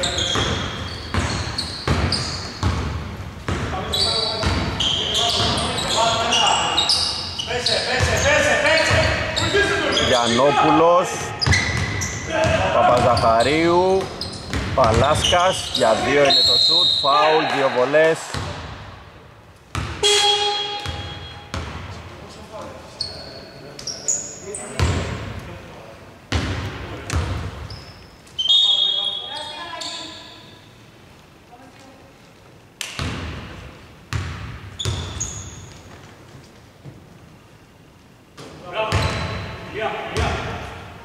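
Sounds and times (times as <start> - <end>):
sneakers squeaking on hardwood: 0.0 - 17.0, 19.7 - 22.0, 22.6 - 25.2, 26.3 - 30.6, 34.1 - 37.0, 38.4 - 39.6
basketball bouncing: 0.3 - 3.8, 11.4 - 13.2, 13.9 - 15.3, 18.3 - 18.8, 19.7 - 21.9, 26.3 - 27.6, 32.9 - 33.5, 34.1 - 35.3.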